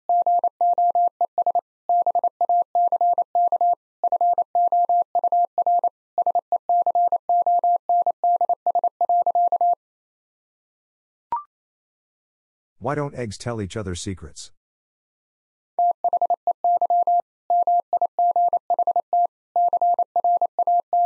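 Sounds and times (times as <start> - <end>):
morse code tone: 15.8 - 21.0.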